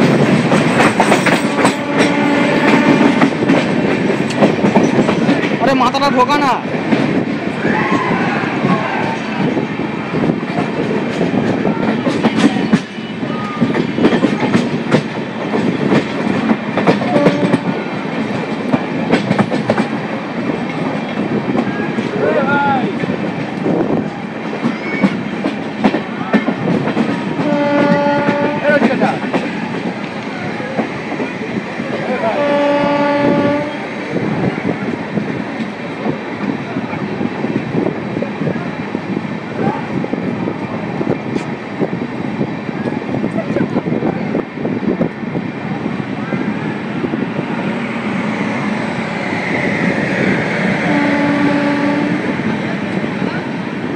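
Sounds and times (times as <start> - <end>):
train wheels clattering over joints: 0.0 - 5.7, 9.2 - 39.3
train horn blasts: 1.4 - 3.6, 17.1 - 17.8, 27.4 - 28.6, 32.4 - 33.8, 50.8 - 52.3.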